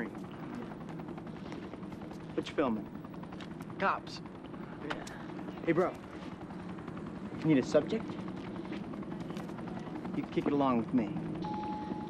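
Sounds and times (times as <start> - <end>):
dialogue: 0.0 - 11.4
outdoor background rumble: 0.0 - 12.0.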